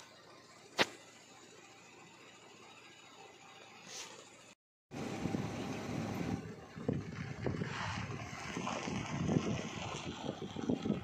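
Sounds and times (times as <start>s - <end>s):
wind buffeting microphone: 5.0s - 11.0s.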